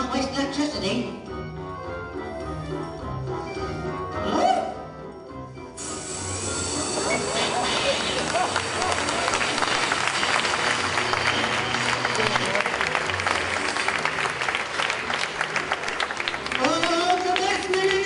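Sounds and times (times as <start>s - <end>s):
audience applauding: 7.1s - 18.0s.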